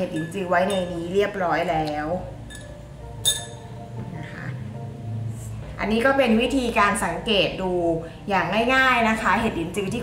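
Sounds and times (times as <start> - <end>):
spoon clinking against glass: 0.0 - 1.2, 2.5 - 3.6.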